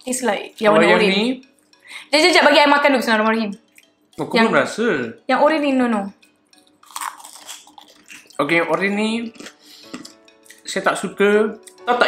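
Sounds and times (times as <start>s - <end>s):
crunching wafer snack: 6.8s - 8.5s, 9.2s - 10.7s.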